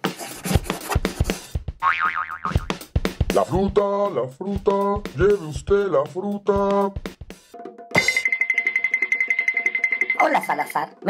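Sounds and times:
cartoon music with drum beat: 0:00.0 - 0:11.0
springy boing sound effect: 0:01.8 - 0:02.7.

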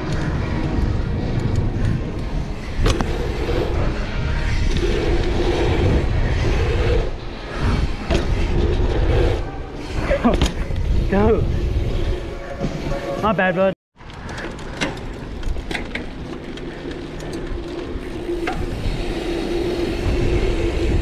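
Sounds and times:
bike tyres rolling on dirt: 0:00.0 - 0:12.9, 0:14.0 - 0:21.0
wind rumbling on microphone: 0:00.0 - 0:13.2, 0:14.0 - 0:21.0.

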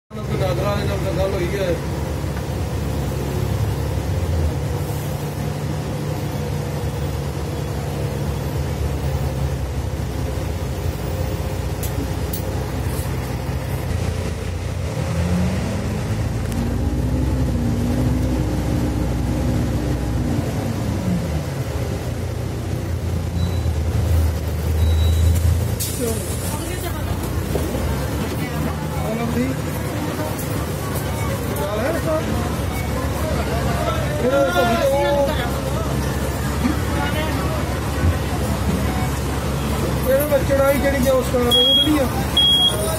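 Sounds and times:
bus diesel engine running: 0:00.1 - 0:42.9.

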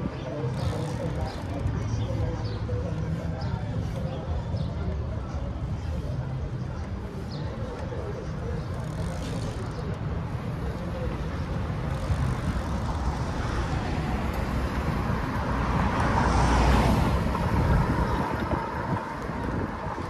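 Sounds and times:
road traffic hum: 0:00.0 - 0:20.0
car passing: 0:11.9 - 0:20.0.

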